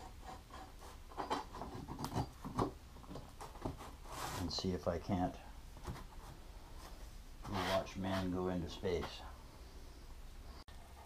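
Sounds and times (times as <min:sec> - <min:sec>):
steel band rubbing on plate: 0:07.4 - 0:08.4.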